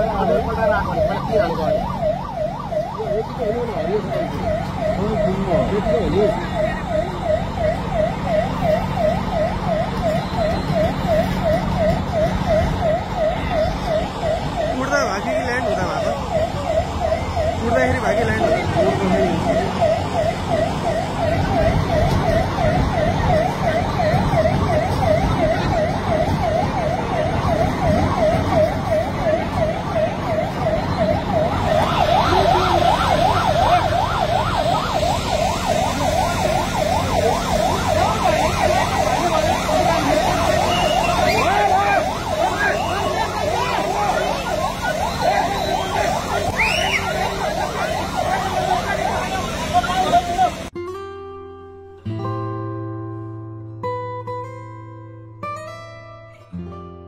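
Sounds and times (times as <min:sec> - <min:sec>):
higher-pitched siren warble: 0:00.0 - 0:50.8
siren warbling: 0:00.0 - 0:50.8.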